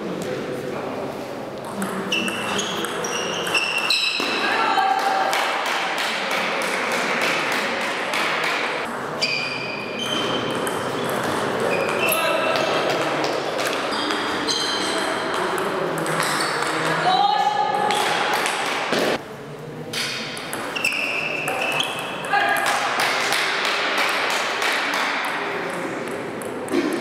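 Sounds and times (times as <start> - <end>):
shoes squeaking on wooden floor: 2.1 - 4.3, 20.7 - 22.2.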